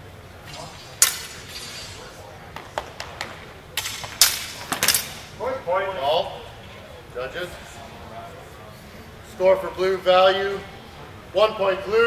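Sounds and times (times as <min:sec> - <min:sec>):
steel swords clashing: 0:00.4 - 0:02.2, 0:03.8 - 0:05.3.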